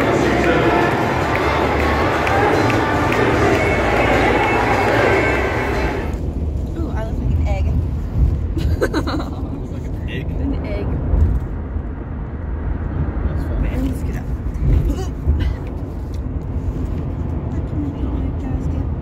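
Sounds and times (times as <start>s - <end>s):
brief voices: 0.0s - 6.1s
stadium crowd noise: 0.0s - 6.3s
car road rumble: 0.0s - 19.0s.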